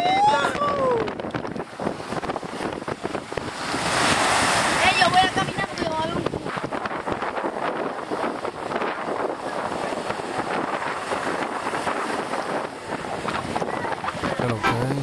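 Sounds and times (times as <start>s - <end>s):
small waves washing on beach: 0.0s - 15.0s
wind buffeting microphone: 0.0s - 15.0s.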